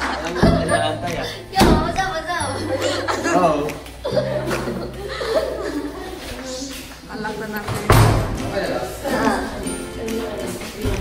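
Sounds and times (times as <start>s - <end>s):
people talking and chuckling: 0.0s - 11.0s.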